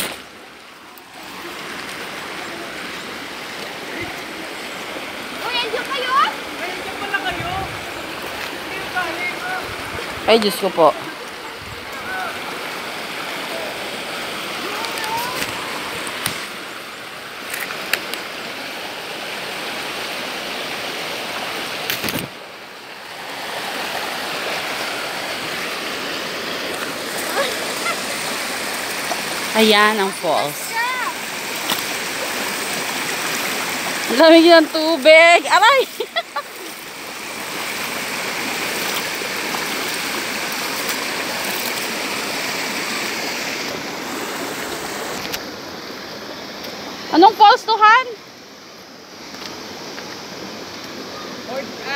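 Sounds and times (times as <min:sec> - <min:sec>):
stream rushing over rocks: 0:00.0 - 0:51.9.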